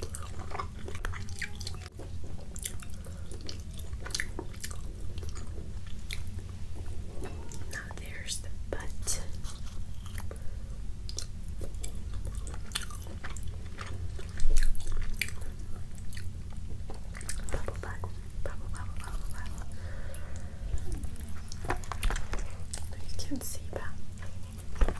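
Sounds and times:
chewing: 0:00.0 - 0:08.0, 0:09.2 - 0:23.1
steady low hum: 0:00.0 - 0:24.9.

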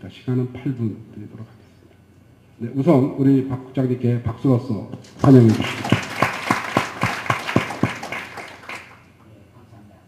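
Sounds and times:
audience applauding: 0:05.2 - 0:09.1.

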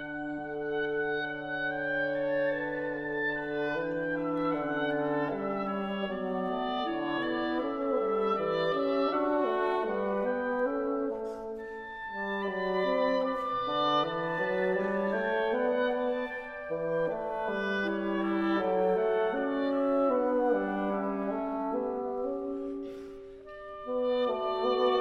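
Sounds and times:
bassoon: 0:00.0 - 0:25.0
clarinet: 0:00.0 - 0:25.0
oboe: 0:00.0 - 0:25.0.

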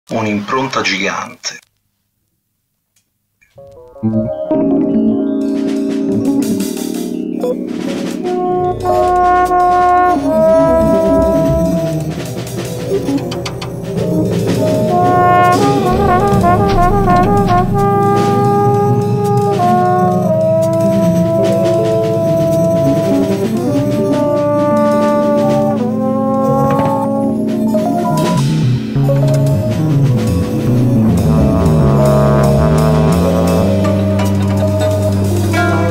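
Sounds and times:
sustained low accompaniment: 0:03.7 - 0:35.9
scattered percussion: 0:05.5 - 0:35.9
brass instrument long notes: 0:08.2 - 0:35.9.

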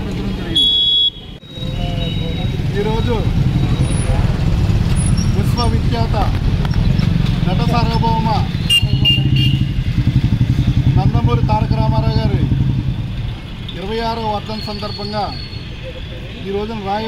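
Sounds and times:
vehicle engine running: 0:02.5 - 0:14.0.

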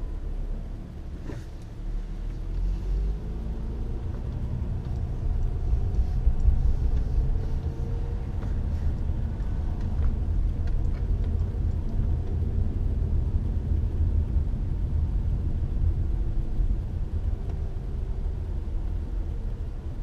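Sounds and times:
car engine from inside cabin: 0:00.0 - 0:20.0.

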